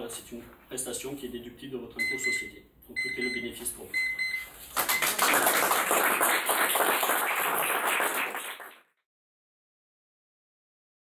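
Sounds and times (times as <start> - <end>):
audience applauding: 4.8 - 8.9.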